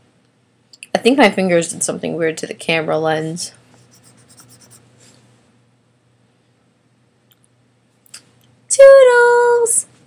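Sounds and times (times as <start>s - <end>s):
fingers scratching on camera: 3.8s - 4.8s.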